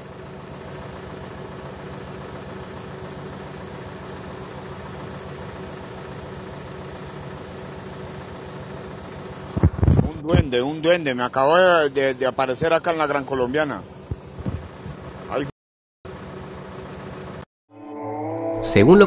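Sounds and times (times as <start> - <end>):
tractor engine running: 0.0 - 12.9, 13.5 - 15.4.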